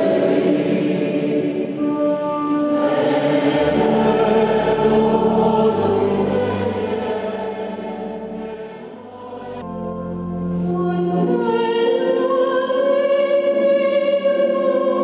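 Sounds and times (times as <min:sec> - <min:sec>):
church choir singing a hymn: 0:00.0 - 0:09.8, 0:10.5 - 0:15.0.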